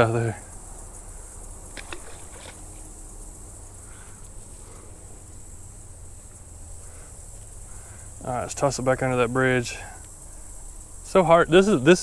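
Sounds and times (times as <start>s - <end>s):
insects buzzing: 0.0s - 12.0s
faint clicks: 1.7s - 2.9s, 7.3s - 7.6s, 10.0s - 10.2s.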